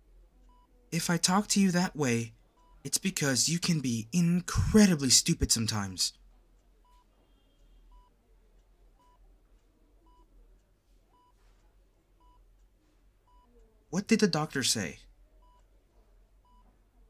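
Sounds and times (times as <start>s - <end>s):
faint low room hum: 0.0s - 17.0s
patient monitor beeping: 0.5s - 6.2s, 6.8s - 8.3s, 8.9s - 12.5s, 13.2s - 15.7s, 16.4s - 16.8s.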